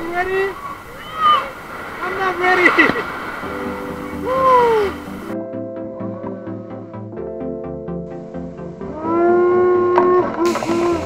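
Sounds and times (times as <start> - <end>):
falling water splashing: 0.0 - 5.4, 10.5 - 11.0
person yelling: 4.2 - 5.1.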